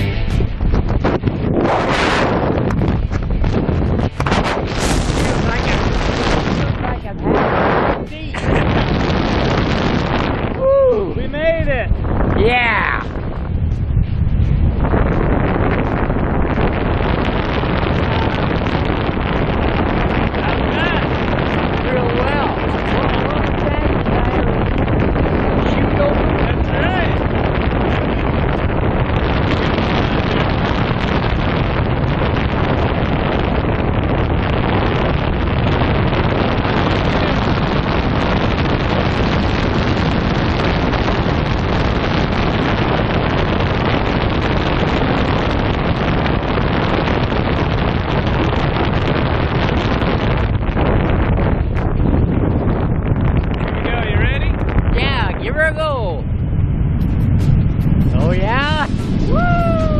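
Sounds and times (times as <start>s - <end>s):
wind rushing over microphone: 0.0s - 59.9s.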